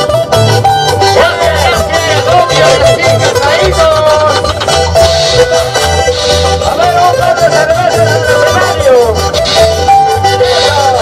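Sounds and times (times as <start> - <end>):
high wavering melody line: 0.0 - 11.0
pulsing bass beat: 0.0 - 11.0.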